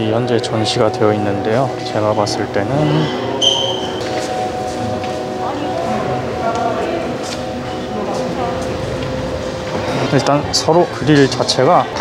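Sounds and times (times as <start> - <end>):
faint murmur of voices: 0.0 - 12.0.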